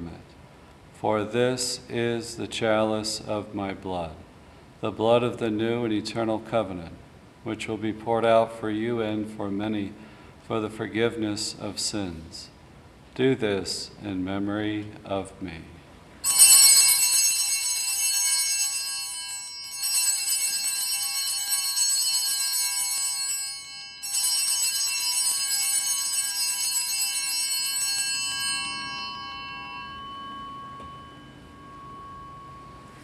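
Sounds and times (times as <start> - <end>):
altar bells ringing: 16.2 - 33.0.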